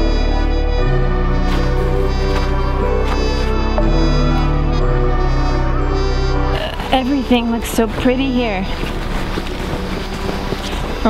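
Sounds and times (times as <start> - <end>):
wind buffeting microphone: 6.9 - 11.0.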